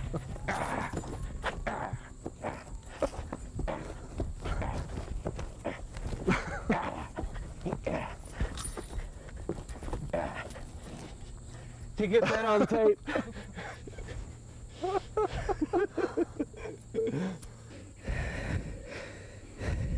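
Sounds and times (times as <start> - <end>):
men grunting: 0.0 - 11.2, 12.0 - 17.4
hooves and feet thumping on grass: 0.0 - 16.7.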